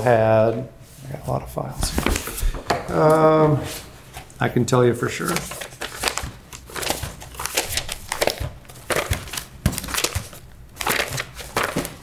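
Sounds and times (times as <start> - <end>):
paper shuffling and rustling: 0.9 - 4.4, 5.0 - 12.0.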